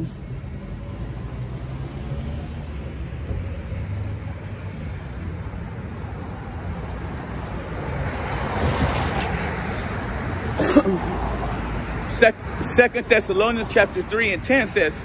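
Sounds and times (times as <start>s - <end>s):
road traffic rumble: 0.0s - 15.0s
car passing close: 0.7s - 12.2s.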